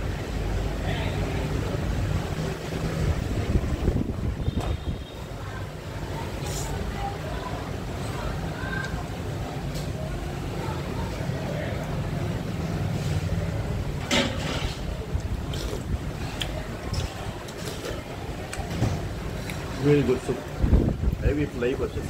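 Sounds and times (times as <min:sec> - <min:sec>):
street traffic rumble: 0:00.0 - 0:22.0.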